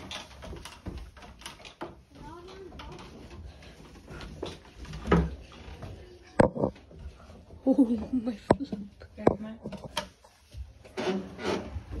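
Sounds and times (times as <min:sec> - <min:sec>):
phone rubbing and scraping: 0:10.9 - 0:12.0.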